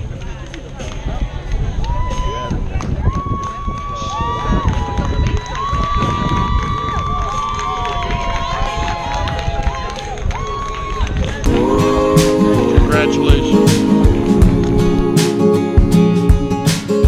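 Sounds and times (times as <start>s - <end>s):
wind rumbling on microphone: 0.0s - 12.2s.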